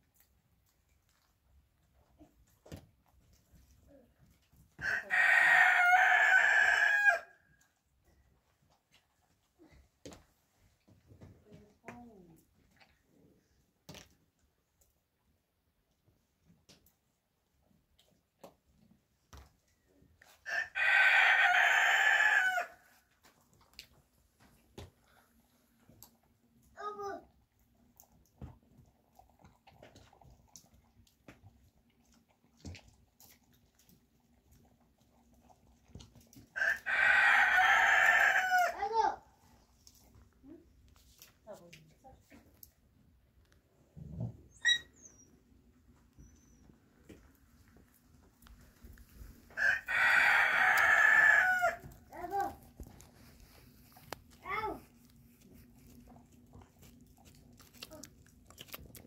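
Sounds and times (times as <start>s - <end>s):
rooster crowing: 4.8s - 7.4s, 20.5s - 22.8s, 36.6s - 38.8s, 49.6s - 51.9s.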